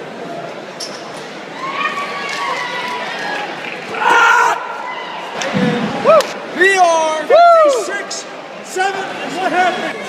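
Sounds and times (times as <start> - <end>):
spectators' voices: 0.0 - 10.0
long drawn-out shout: 3.9 - 5.4.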